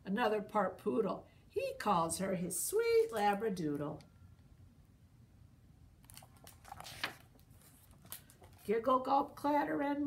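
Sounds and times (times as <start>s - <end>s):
book pages turning: 6.0s - 8.8s.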